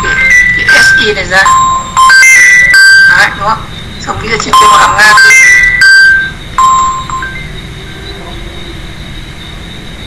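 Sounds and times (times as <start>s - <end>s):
electronic beeping tune: 0.0s - 7.7s.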